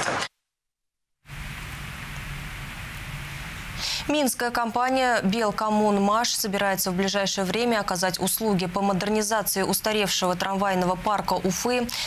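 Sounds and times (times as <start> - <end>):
steady hiss with faint hum: 1.3 - 12.0.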